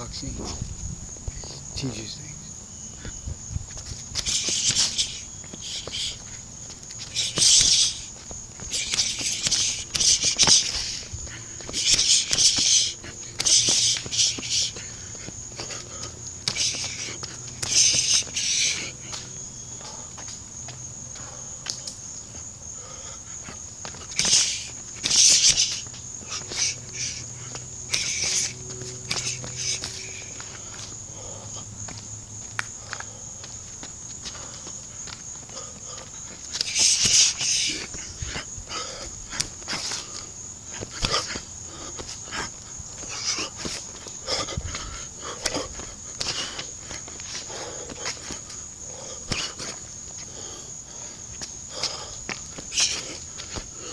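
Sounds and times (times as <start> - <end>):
insects chirring: 0.0 - 53.9
faint clicks and scuffs: 3.0 - 19.4, 23.4 - 31.0, 31.8 - 38.5, 39.3 - 44.2, 45.4 - 48.6
sharp hissing exhalations: 4.2 - 19.2, 22.7 - 31.7, 35.5 - 53.9
sharp breaths hissing out: 8.7 - 15.0.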